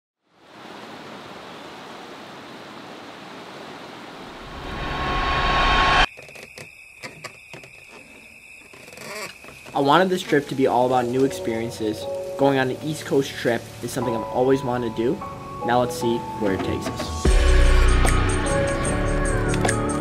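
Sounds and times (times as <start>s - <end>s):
steady rushing noise: 4.0s - 6.1s.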